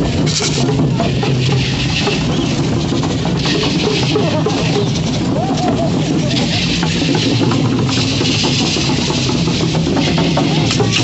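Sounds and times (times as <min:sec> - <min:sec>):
drum beats: 0:00.0 - 0:11.0
rattles shaking: 0:00.0 - 0:11.0.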